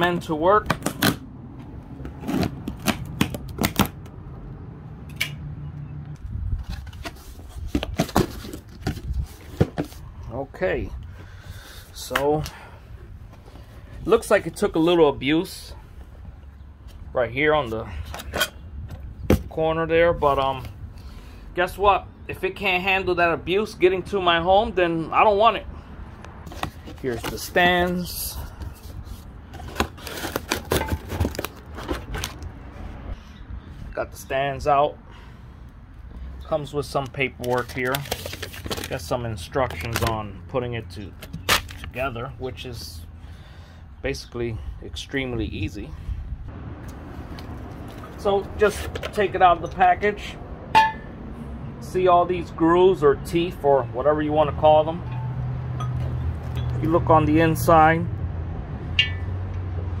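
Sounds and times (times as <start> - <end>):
cardboard box rustling and scraping: 28.8 - 32.4.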